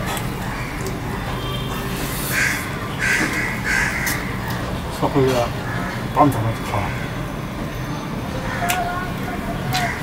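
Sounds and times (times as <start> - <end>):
crow cawing: 0.5 - 0.9, 2.3 - 4.4, 5.6 - 6.1, 6.8 - 7.1, 9.8 - 10.0.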